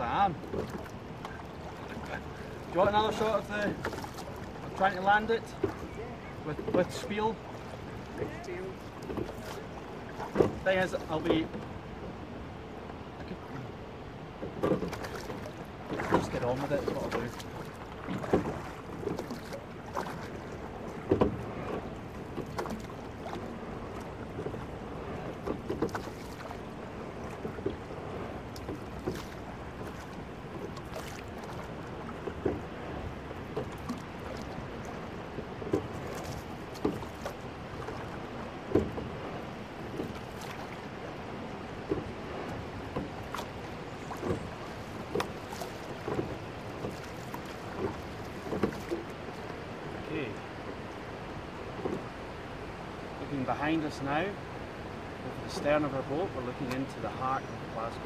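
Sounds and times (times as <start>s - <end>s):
oars clunking in gates: 0.0s - 58.0s
water rushing along hull: 0.0s - 58.0s.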